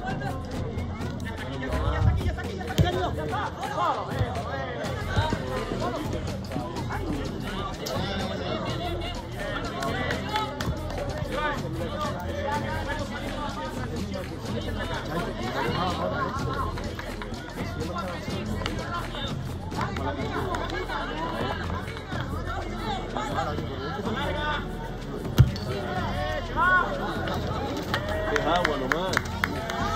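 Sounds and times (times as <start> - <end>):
background music: 0.0 - 29.9
voices talking and calling: 0.0 - 29.9.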